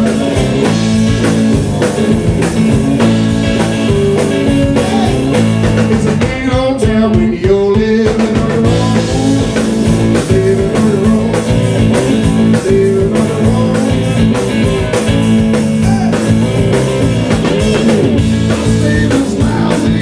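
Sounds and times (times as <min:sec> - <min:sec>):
bending guitar line: 0:00.0 - 0:06.7, 0:08.0 - 0:20.0
blues-rock band playing live: 0:00.0 - 0:20.0.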